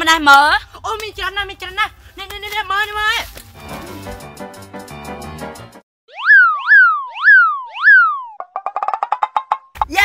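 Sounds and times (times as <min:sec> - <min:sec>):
cartoon boing glides: 0:06.1 - 0:09.8.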